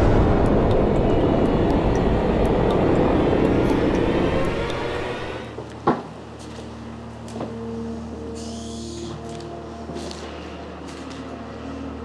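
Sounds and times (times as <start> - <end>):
sharp hit: 0.0 - 5.5
loud rumbling drone: 0.0 - 5.6.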